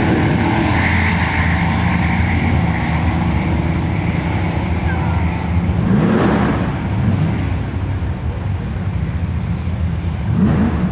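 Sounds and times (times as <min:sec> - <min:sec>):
distant car engines rumbling: 0:00.0 - 0:10.9.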